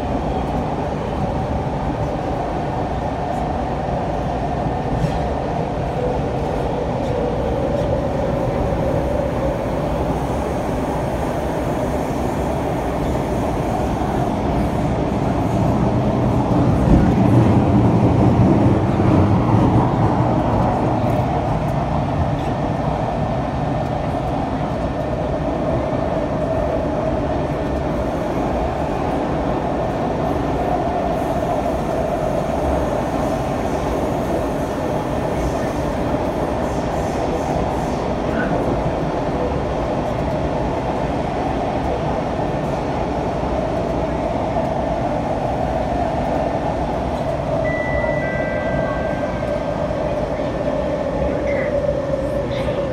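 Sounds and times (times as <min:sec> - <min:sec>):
train interior rumble: 0:00.0 - 0:52.9.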